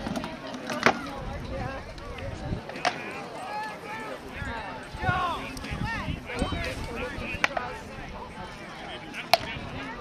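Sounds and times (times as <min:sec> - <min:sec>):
faint chatter of onlookers: 0:00.0 - 0:10.0.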